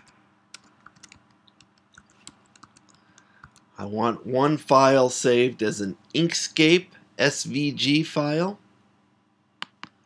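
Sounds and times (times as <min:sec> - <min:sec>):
computer keyboard typing: 0:00.0 - 0:03.7.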